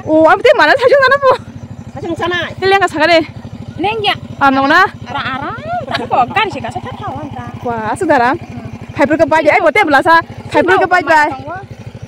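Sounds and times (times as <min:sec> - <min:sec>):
women talking: 0:00.0 - 0:11.8
vehicle engine idling: 0:00.0 - 0:12.0.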